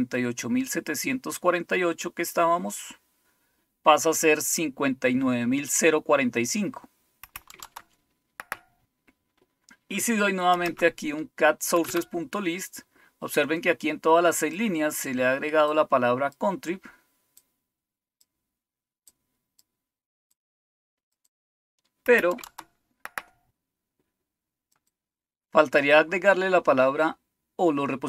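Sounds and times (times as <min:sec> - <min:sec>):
computer keyboard clicks: 0:07.2 - 0:08.7, 0:11.8 - 0:12.1, 0:22.1 - 0:23.4.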